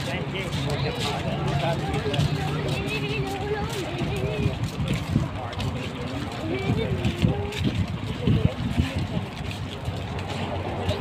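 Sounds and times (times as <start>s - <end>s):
low hum of vehicle engines: 0.0s - 11.0s
outdoor noise: 0.0s - 11.0s
people talking: 0.0s - 11.0s.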